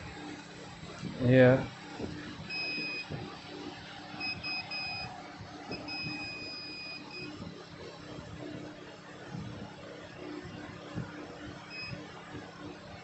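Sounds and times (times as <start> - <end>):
multimeter continuity beeping: 2.4 - 3.3, 4.1 - 5.1, 5.7 - 7.4, 11.6 - 12.1.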